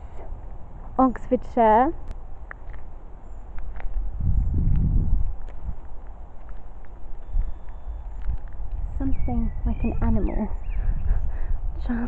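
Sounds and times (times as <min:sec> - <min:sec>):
low rumble on microphone: 0:02.0 - 0:12.0
footsteps on gravel: 0:02.4 - 0:08.8.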